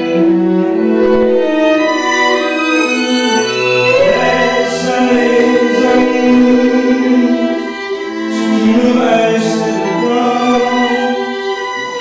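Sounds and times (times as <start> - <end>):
bowed strings: 0.0 - 12.0.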